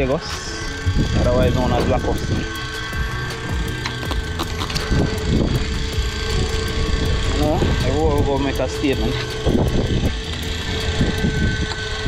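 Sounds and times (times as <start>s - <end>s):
boat motor humming: 0.0s - 12.0s
wind rumble on microphone: 0.0s - 12.0s.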